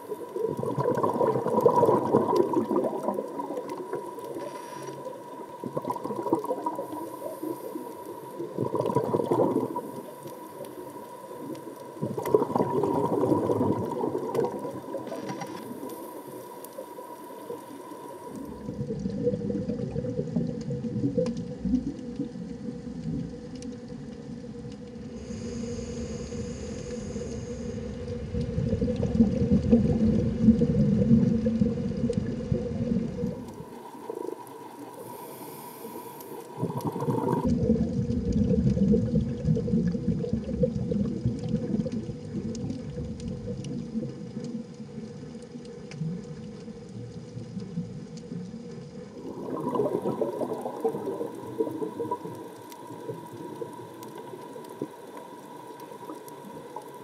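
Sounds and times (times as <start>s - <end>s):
faint steady hum: 0.0s - 57.0s
low underwater rumble: 17.0s - 57.0s.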